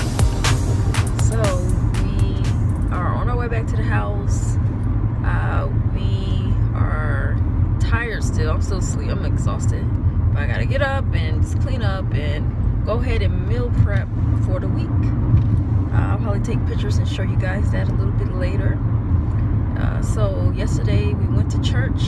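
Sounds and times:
road and engine rumble: 0:00.0 - 0:22.0
people talking: 0:01.2 - 0:04.6, 0:05.2 - 0:15.1, 0:15.9 - 0:18.8, 0:19.8 - 0:22.0.

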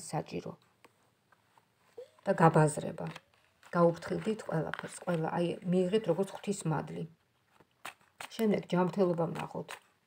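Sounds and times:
person speaking: 0:01.9 - 0:07.2, 0:08.2 - 0:10.0
cards clicking in hand: 0:07.6 - 0:10.0.

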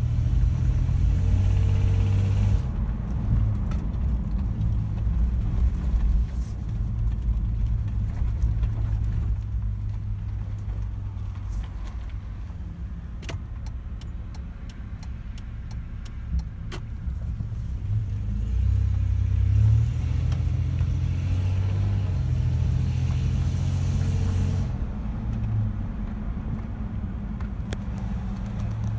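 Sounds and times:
engine drone inside car: 0:00.0 - 0:28.9
road noise: 0:00.0 - 0:28.9.

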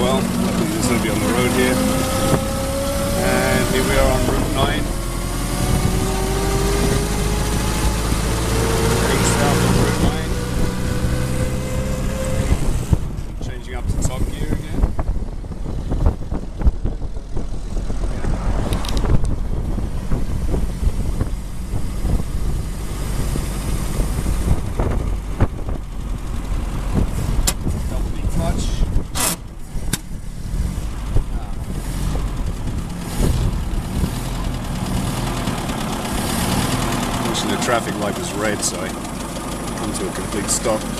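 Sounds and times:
old car engine whining: 0:00.0 - 0:40.9.

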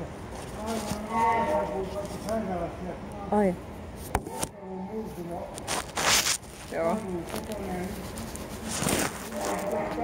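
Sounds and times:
recording device rubbing rustle: 0:00.3 - 0:02.4, 0:04.0 - 0:10.0
person speaking: 0:00.5 - 0:03.6, 0:04.3 - 0:10.0.

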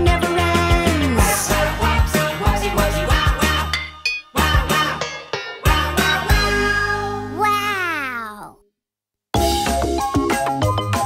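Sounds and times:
sliding voice-like tone: 0:07.4 - 0:08.6.

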